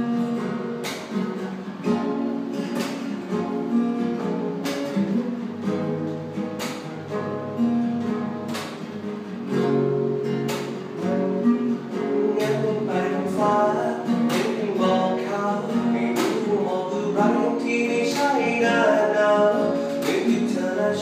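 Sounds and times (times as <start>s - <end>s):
acoustic guitar fingerstyle: 0.0s - 21.0s.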